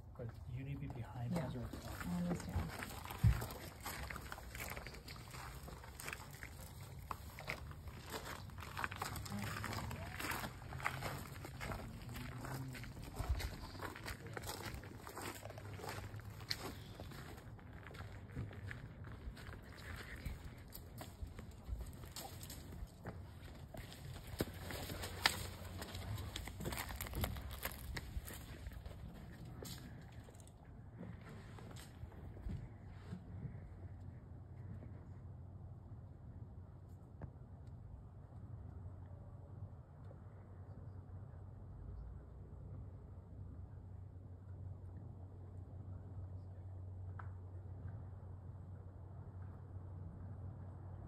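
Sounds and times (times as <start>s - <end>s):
low steady hum: 0.0s - 51.0s
faint voices: 8.0s - 17.0s.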